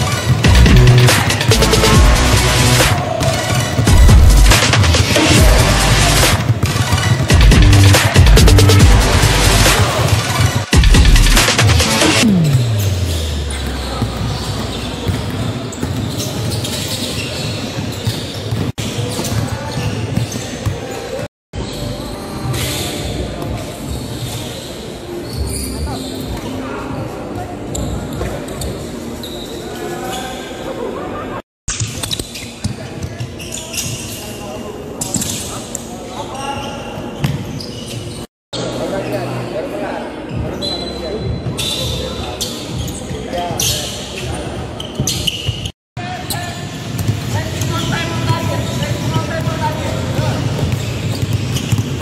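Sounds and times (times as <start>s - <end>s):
echoing indoor hall din: 0.0s - 52.0s
basketballs bouncing on wooden floor: 6.4s - 7.8s, 13.6s - 20.9s, 46.9s - 52.0s.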